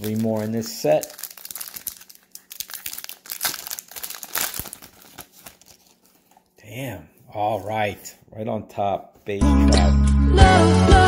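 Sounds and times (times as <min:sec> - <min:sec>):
foil wrapper crinkling: 0:00.0 - 0:06.6.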